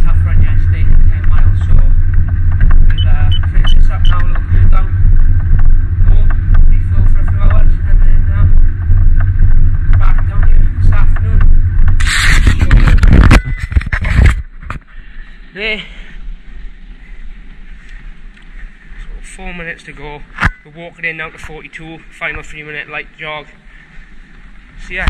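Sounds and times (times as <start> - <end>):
treadmill belt and motor rumble: 0.0 - 25.0.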